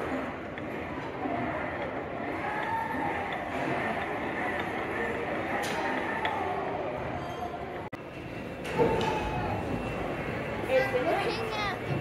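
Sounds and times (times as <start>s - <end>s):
indistinct chatter in hall: 0.0s - 12.0s.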